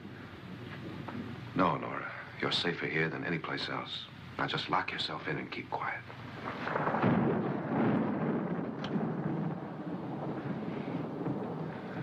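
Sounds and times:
low rumbling noise: 0.0 - 12.0.

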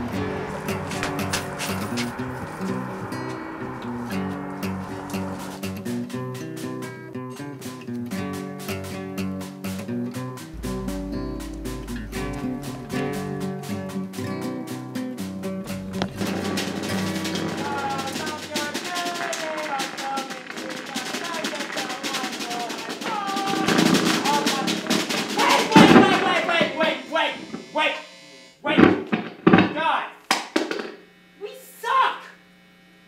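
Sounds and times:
electric guitar notes: 0.0 - 8.0, 10.2 - 18.5
rapid clattering drum hits: 10.6 - 13.7, 15.7 - 27.0.

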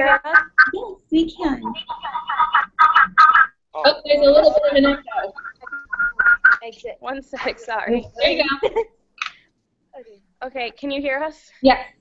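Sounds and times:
indistinct speech over call line: 0.0 - 6.7.

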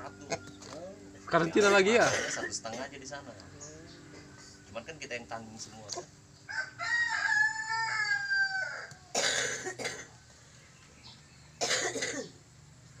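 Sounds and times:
rooster crowing: 6.4 - 9.2
rooster rasping bursts: 6.5 - 9.2.

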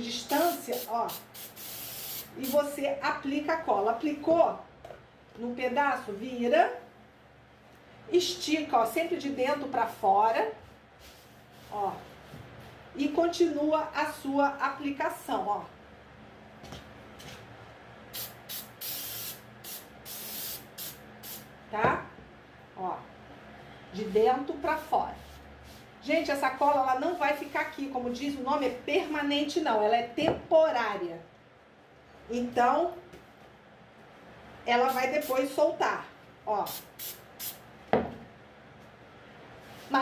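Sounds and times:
aerosol spray can hissing: 0.3 - 2.6, 18.2 - 21.5, 36.7 - 37.6.

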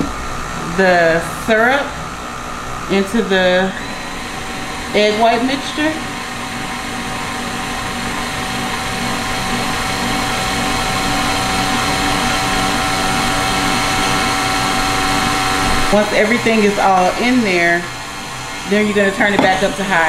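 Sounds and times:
stand mixer motor whining: 1.8 - 20.0.

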